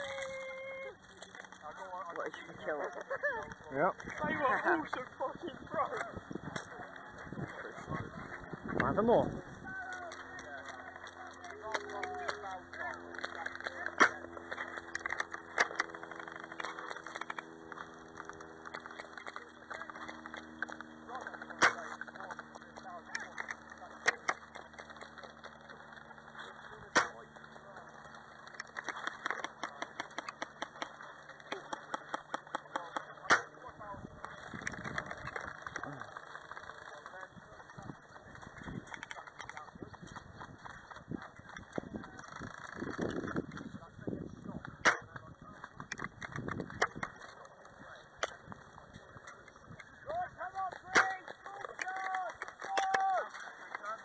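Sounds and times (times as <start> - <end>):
rapid light clicks: 6.0 - 43.8, 44.6 - 54.0.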